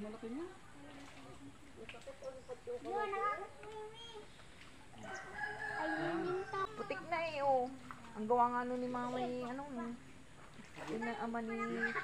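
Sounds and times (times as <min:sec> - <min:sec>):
rooster crowing: 0:05.0 - 0:06.9.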